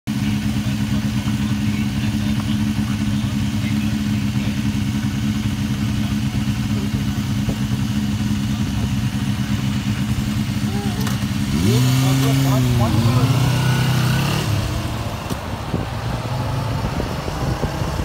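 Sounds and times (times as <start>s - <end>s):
motorcycle engines idling: 0.1s - 18.0s.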